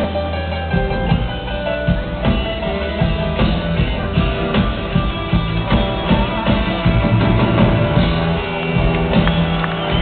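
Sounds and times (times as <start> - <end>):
live rock band playing: 0.0 - 10.0
steady drum beat: 0.0 - 10.0.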